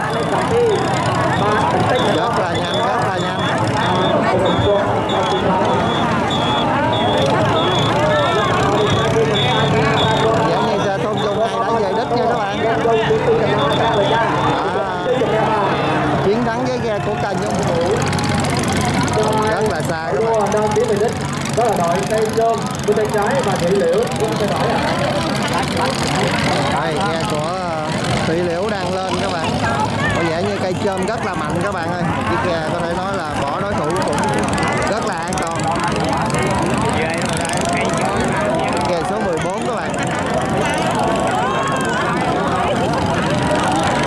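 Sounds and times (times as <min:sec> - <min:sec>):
boat engines droning: 0:00.0 - 0:44.0
crowd shouting and cheering: 0:00.0 - 0:44.0
high whistle blasts: 0:03.8 - 0:08.0.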